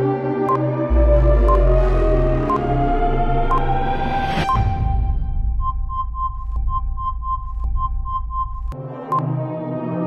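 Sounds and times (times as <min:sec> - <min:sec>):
ambient synth bed: 0:00.0 - 0:08.6
low electronic drone: 0:00.0 - 0:08.8.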